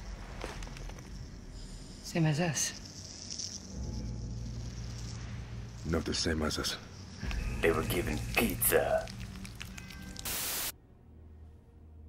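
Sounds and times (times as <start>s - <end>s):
hissing static burst: 10.2s - 10.7s.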